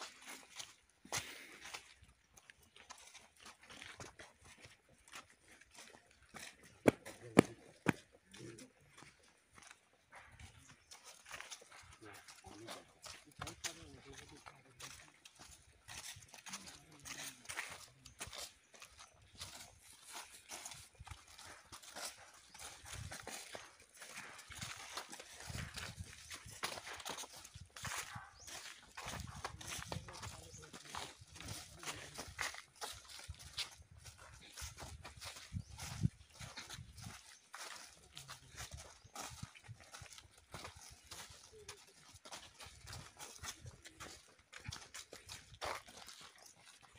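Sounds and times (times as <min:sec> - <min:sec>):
footsteps in dry leaves: 0:00.0 - 0:46.9.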